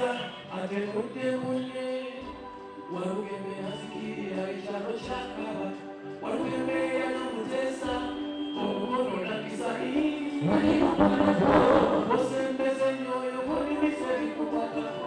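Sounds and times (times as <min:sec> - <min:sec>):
man singing into a microphone: 0:00.0 - 0:15.0
backing band playing: 0:10.4 - 0:12.6.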